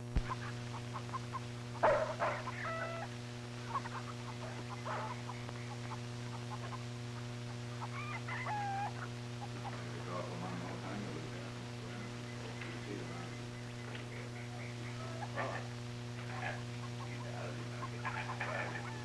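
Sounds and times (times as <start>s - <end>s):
chickens clucking: 0.0s - 19.0s
electrical hum: 0.0s - 19.0s
rooster-like call: 1.8s - 6.8s, 7.8s - 9.7s, 17.8s - 19.0s.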